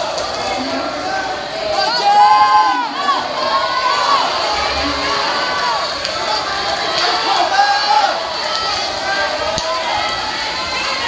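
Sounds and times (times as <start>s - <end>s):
crowd cheering and yelling: 0.0s - 11.0s.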